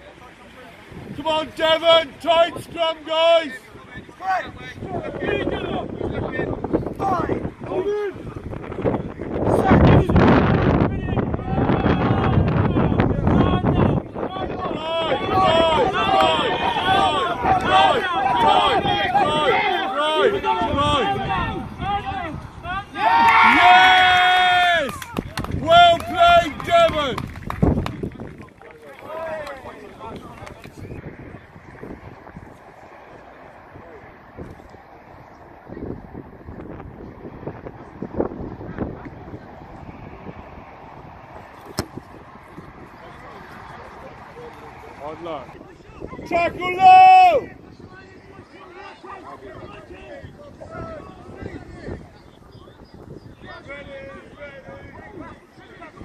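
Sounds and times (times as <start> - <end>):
wind noise on microphone: 0.8 - 56.0
long drawn-out shout: 10.9 - 27.2, 45.8 - 51.9
people shouting short calls: 11.0 - 27.2, 45.7 - 52.8.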